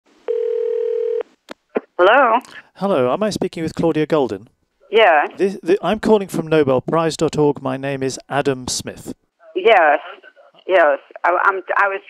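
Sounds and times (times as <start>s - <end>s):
telephone line beep: 0.3s - 1.2s.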